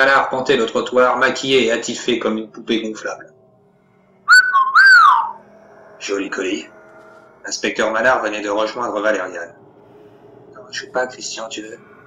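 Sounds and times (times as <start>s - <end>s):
wolf whistle: 4.3s - 5.4s.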